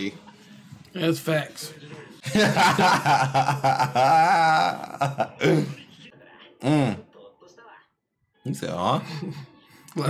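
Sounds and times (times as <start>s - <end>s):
faint dialogue: 4.0s - 10.0s.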